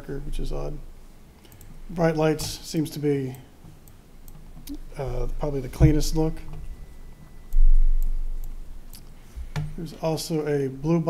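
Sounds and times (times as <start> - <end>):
faint clicks: 1.4 - 1.8
low dull thump: 5.8 - 6.2.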